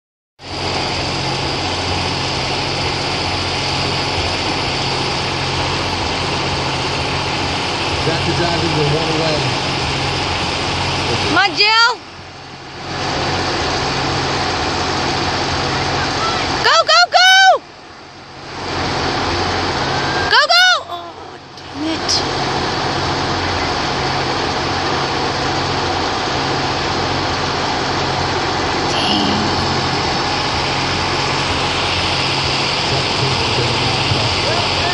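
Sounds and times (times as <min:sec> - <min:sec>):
steady background noise: 0:00.4 - 0:34.9.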